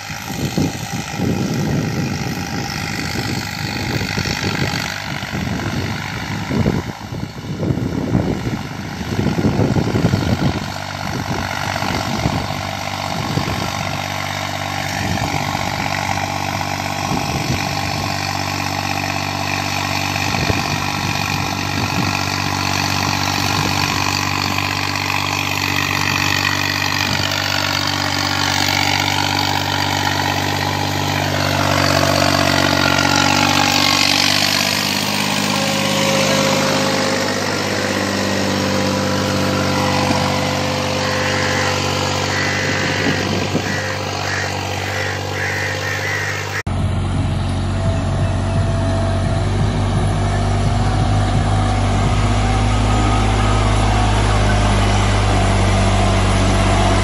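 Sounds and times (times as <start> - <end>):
tractor diesel engine running: 0.0 - 57.0.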